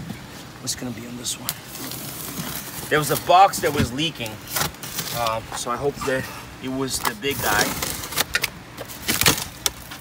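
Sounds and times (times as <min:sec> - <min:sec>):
foam lid cracking and scraping: 0:01.5 - 0:06.3, 0:06.9 - 0:10.0.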